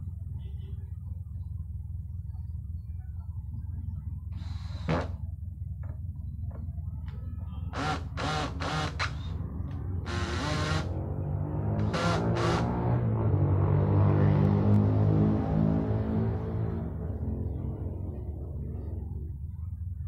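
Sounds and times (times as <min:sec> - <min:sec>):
cordless drill driving screws: 0:07.8 - 0:09.2, 0:10.1 - 0:10.9.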